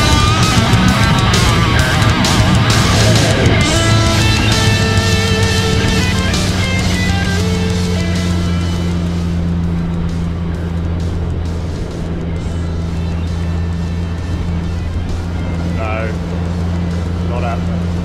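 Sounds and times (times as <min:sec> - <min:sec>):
hull rushing over choppy water: 0:00.0 - 0:18.0
outboard motor droning: 0:00.0 - 0:18.0
rock guitar music: 0:00.0 - 0:18.0.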